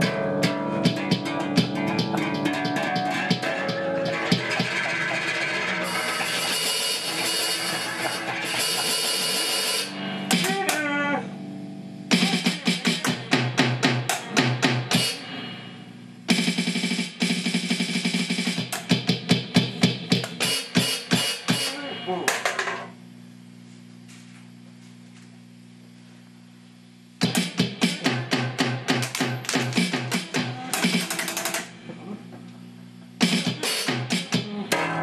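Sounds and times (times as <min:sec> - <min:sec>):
electronic drum hits: 0:00.0 - 0:10.7, 0:12.1 - 0:15.3, 0:16.3 - 0:22.8, 0:27.2 - 0:31.7, 0:33.2 - 0:35.0
sustained pitched electronic sounds: 0:00.0 - 0:12.6.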